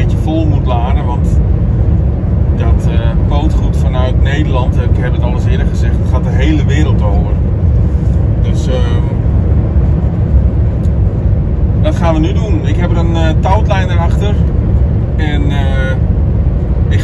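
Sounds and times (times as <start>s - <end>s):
man talking: 0.0s - 1.4s, 2.6s - 7.4s, 8.4s - 9.2s, 11.8s - 14.4s, 15.2s - 16.0s
truck engine and tyres droning: 0.0s - 17.0s.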